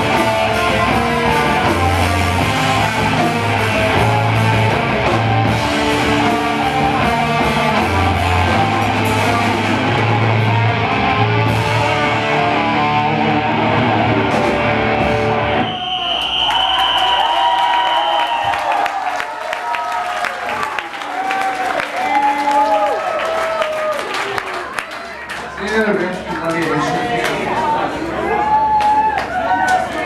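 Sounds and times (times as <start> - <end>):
metal band playing live: 0.0 - 15.7
crowd clapping and cheering: 0.0 - 30.0.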